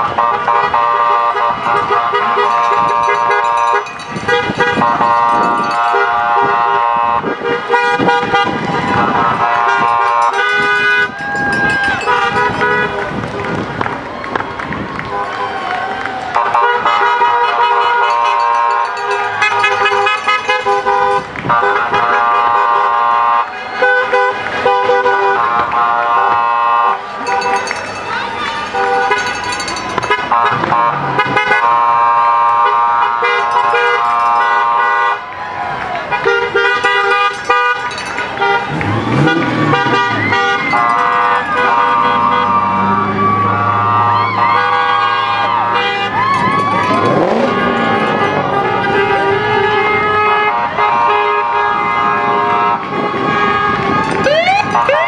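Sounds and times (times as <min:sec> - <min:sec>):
car horns honking: 0:00.0 - 0:13.6, 0:16.4 - 0:35.3, 0:36.1 - 0:55.0
cars driving slowly past: 0:00.0 - 0:55.0
people shouting: 0:08.6 - 0:12.8, 0:27.1 - 0:29.9, 0:38.6 - 0:50.2.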